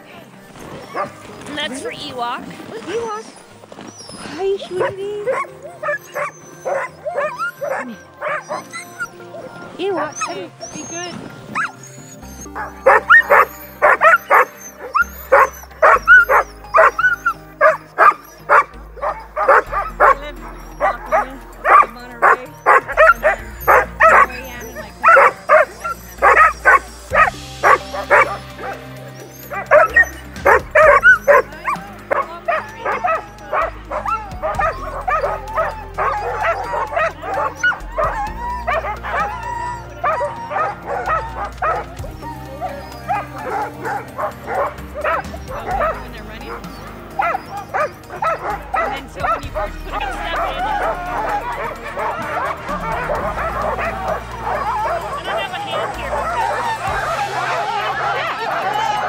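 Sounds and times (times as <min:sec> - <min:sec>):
sled dogs barking and yipping: 0:00.0 - 0:59.0.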